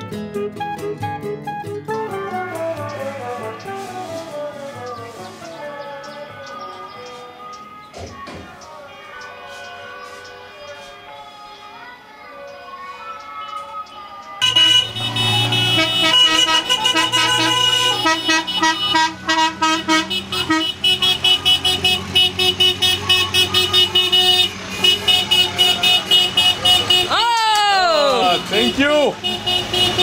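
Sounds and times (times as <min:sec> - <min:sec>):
car horns: 0:14.4 - 0:30.0.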